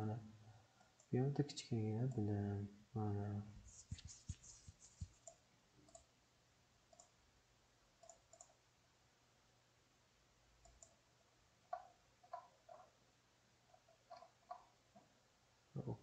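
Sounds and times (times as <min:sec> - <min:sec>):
low steady hum: 0:00.0 - 0:16.0
computer mouse clicks: 0:03.7 - 0:06.1, 0:06.9 - 0:07.2, 0:08.0 - 0:08.6, 0:10.6 - 0:11.0, 0:11.7 - 0:12.9, 0:13.7 - 0:14.7.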